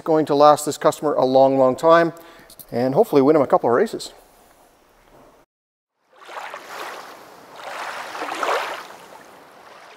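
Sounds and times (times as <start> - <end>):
ocean waves: 6.1 - 9.9.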